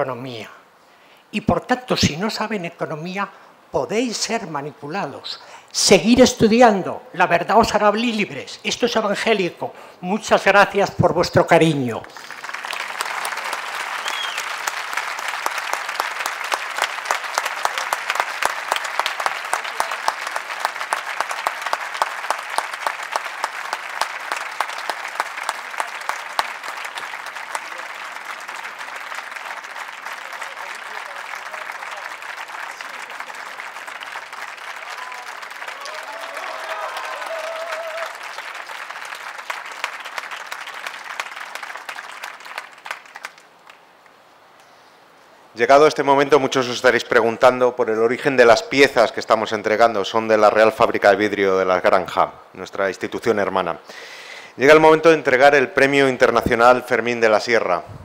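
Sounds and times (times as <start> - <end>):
audience applauding: 12.0 - 43.8.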